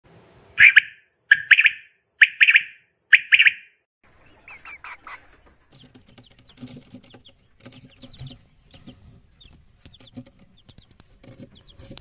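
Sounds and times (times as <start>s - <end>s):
bird calling harshly: 0.6s - 3.7s.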